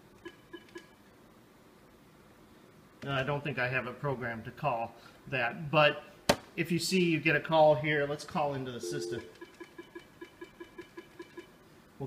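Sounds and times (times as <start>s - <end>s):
telephone speaker short beeps: 8.8s - 9.4s.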